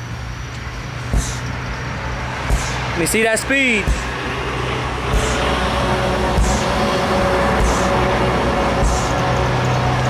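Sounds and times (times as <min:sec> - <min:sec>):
steady low hum: 0:00.0 - 0:10.0
sledgehammer striking tire: 0:01.1 - 0:01.5, 0:02.4 - 0:04.2, 0:05.0 - 0:05.6, 0:06.2 - 0:09.2.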